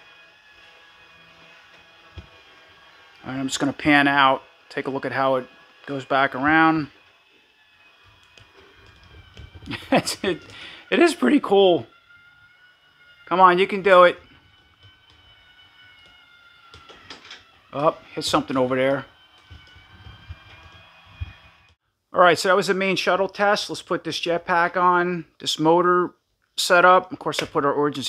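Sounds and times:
toy electric motor whine: 0:00.0 - 0:21.8
person speaking: 0:09.7 - 0:11.9.

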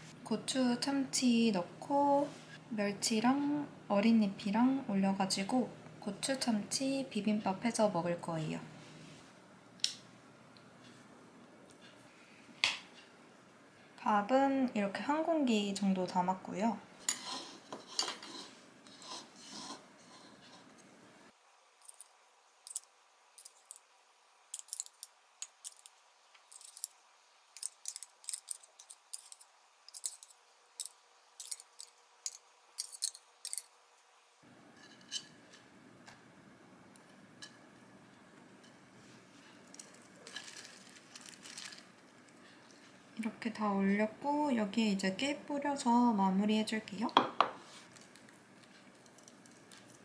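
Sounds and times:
utensil clicking and scraping tin: 0:27.6 - 0:33.7
soft handling of leaves: 0:38.0 - 0:43.6, 0:47.0 - 0:50.0.

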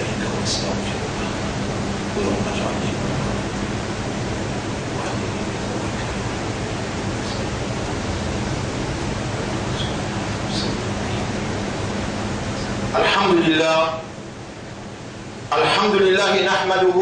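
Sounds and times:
low even hum: 0:00.0 - 0:17.0
steady background hiss: 0:00.0 - 0:17.0.

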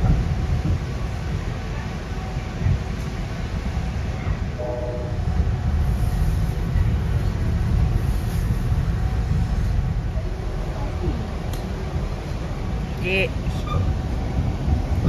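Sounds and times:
train rumble inside carriage: 0:00.0 - 0:15.0
brief higher tone: 0:04.6 - 0:05.2.

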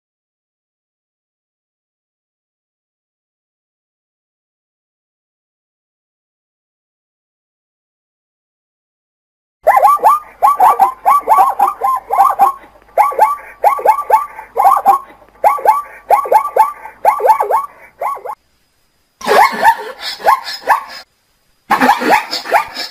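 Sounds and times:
zebra barking: 0:09.7 - 0:18.4.

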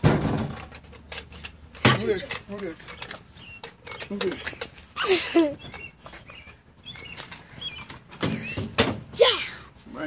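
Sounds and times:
loud thump: 0:00.0 - 0:00.6.

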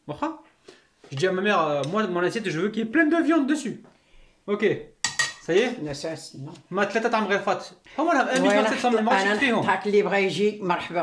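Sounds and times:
person speaking: 0:00.0 - 0:03.8, 0:04.5 - 0:11.0
metal spoons clinking: 0:05.1 - 0:05.5.

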